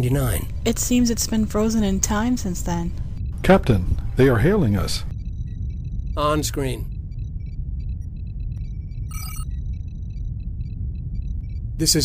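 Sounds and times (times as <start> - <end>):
steady low hum: 0.0 - 12.0
bright electronic chirp: 5.1 - 12.0
computer console beeps: 5.1 - 12.0.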